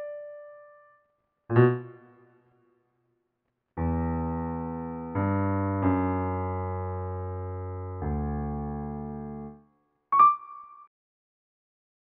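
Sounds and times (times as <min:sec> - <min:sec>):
low piano notes ringing: 0:10.2 - 0:10.9.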